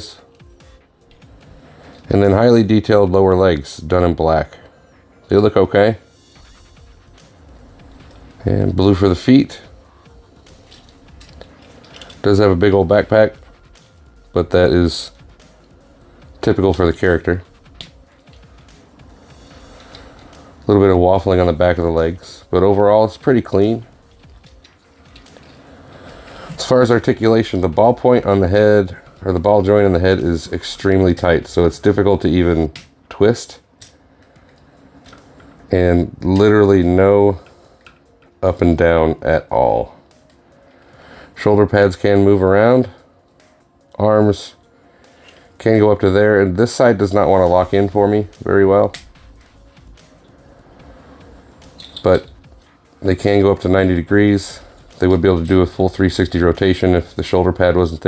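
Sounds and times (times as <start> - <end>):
faint music: 0.0 - 58.0
low steady background hum: 0.0 - 58.0
plastic toy clicking and rubbing: 10.6 - 12.2.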